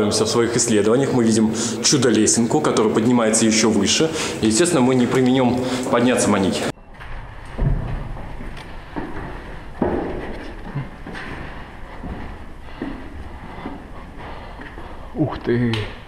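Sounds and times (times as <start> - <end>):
footsteps on wooden ladder: 7.2 - 15.1.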